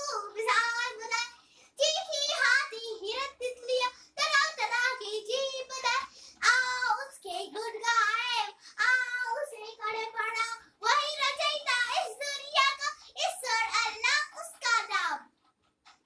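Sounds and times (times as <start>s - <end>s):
girl reciting in sing-song voice: 0.0s - 15.4s.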